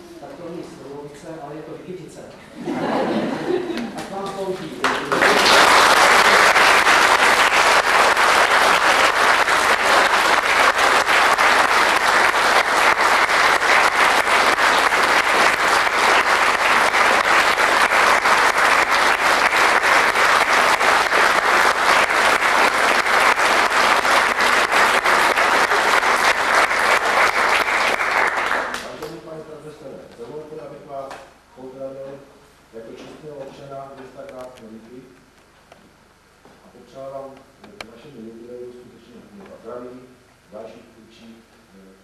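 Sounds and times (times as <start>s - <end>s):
audience applause: 4.8s - 29.1s.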